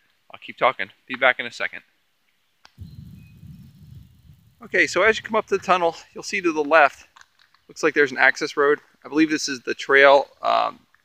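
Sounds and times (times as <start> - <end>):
wind rumble on microphone: 2.8 - 6.0.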